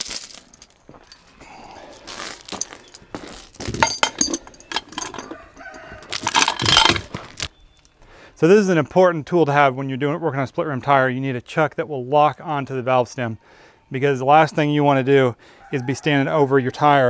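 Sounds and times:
heavy chain clinking and rattling: 0.0s - 7.5s.

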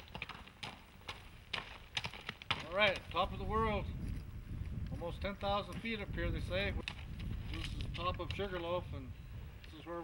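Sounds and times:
horse hooves on dirt: 0.0s - 8.9s.

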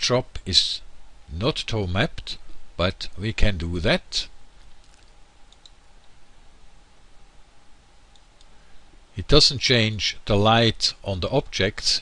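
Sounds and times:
low steady hiss: 0.0s - 12.0s
computer mouse clicks: 4.8s - 6.2s.

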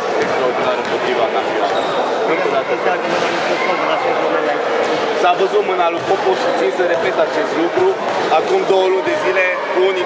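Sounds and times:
background chatter: 0.0s - 10.0s
man talking: 5.2s - 10.0s.

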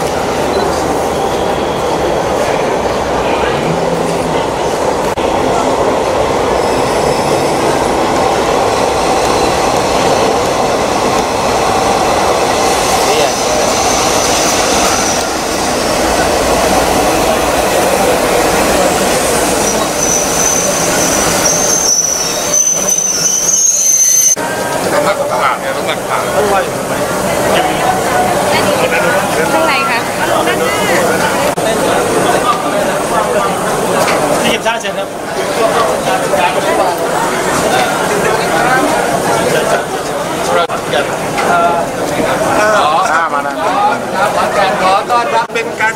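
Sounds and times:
diesel train rumbling: 0.0s - 43.1s
train wheel squeal: 6.5s - 7.8s, 19.0s - 24.7s.

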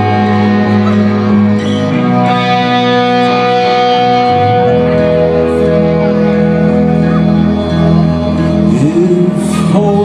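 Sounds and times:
guitars ringing on held chords: 0.0s - 10.0s
live rock band playing: 0.0s - 10.0s.

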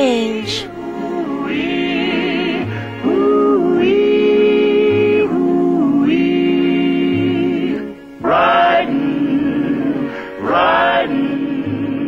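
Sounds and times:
voices holding sustained chords: 0.0s - 12.0s.

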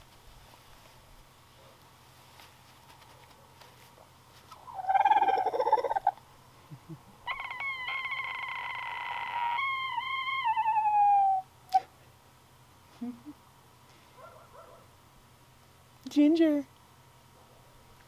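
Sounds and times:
roosters crowing: 4.7s - 6.2s, 7.2s - 11.5s.

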